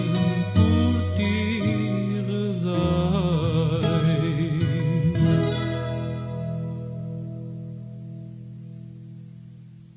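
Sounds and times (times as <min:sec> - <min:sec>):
guitar chord ringing: 0:00.0 - 0:09.9.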